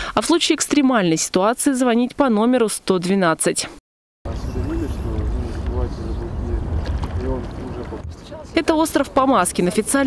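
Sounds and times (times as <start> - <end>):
low outdoor rumble: 4.3 - 10.0.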